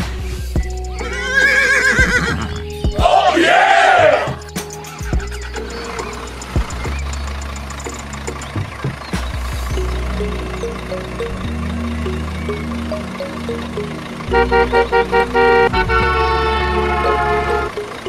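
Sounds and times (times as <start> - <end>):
background music: 0.0 - 18.0
horse whinnies: 1.0 - 2.5.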